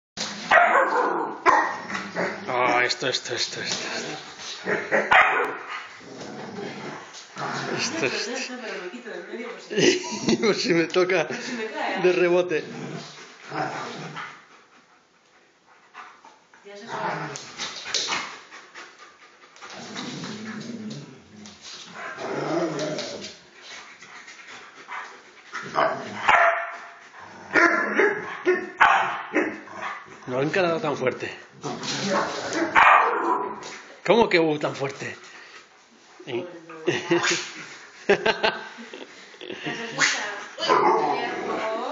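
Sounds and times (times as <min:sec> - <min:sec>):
dogs play-fighting and barking: 0:00.2 - 0:10.3, 0:11.3 - 0:34.0, 0:34.8 - 0:41.9
dogs barking: 0:00.5 - 0:02.4, 0:04.6 - 0:05.7, 0:25.8 - 0:30.2, 0:32.5 - 0:33.7.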